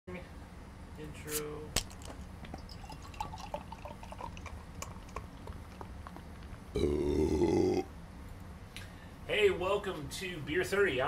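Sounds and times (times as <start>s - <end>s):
steady low hum: 0.1s - 11.0s
liquid dripping and bubbling: 1.8s - 6.8s.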